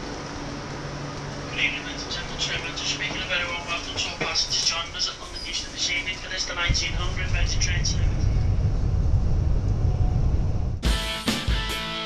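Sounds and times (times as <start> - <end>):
train rumble: 0.0 - 11.6
music: 10.8 - 12.0.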